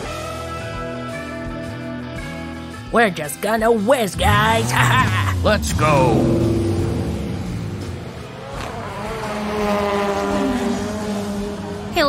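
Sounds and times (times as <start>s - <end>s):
race car engine sound effect: 4.0s - 12.0s.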